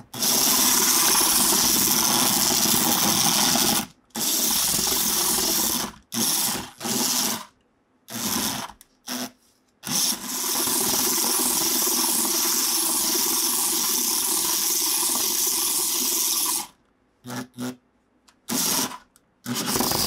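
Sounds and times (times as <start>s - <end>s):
small electric motor whirring: 0.1s - 17.8s, 18.5s - 20.0s.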